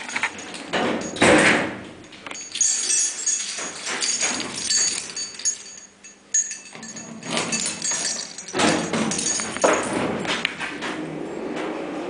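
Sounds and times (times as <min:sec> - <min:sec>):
elevator door metal clank: 0:00.3 - 0:02.5, 0:06.7 - 0:11.8.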